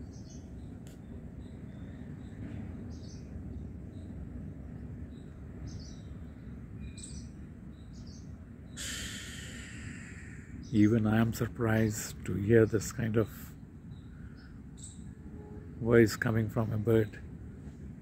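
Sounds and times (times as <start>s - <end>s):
birds calling: 0.0s - 17.4s
low outdoor rumble: 0.0s - 18.0s.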